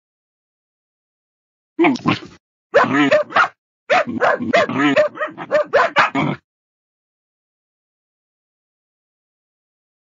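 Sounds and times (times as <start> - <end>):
dogs barking: 2.8 - 6.4.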